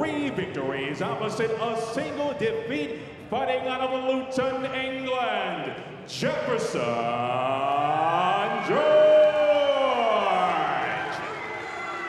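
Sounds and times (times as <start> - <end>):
announcer's amplified voice calling: 0.0 - 11.2
crowd noise: 0.0 - 12.0.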